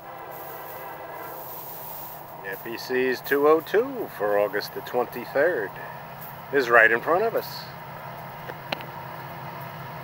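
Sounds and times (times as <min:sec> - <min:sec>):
distant train horn blast: 0:00.0 - 0:02.9.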